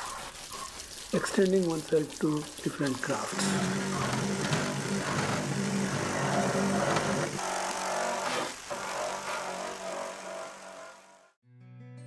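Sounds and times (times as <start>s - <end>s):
grinder motor hum: 3.2s - 11.4s
abrasive wheel grinding metal: 3.3s - 11.4s.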